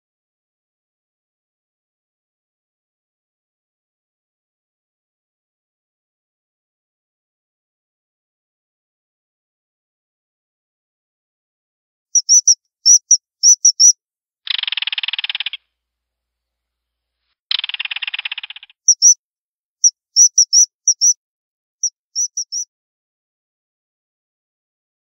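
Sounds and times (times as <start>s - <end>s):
high whistled bird calls: 12.2s - 13.9s, 18.9s - 19.2s, 19.8s - 21.2s, 21.8s - 22.6s
harsh rattling bird buzzes: 17.5s - 19.2s, 22.2s - 22.6s.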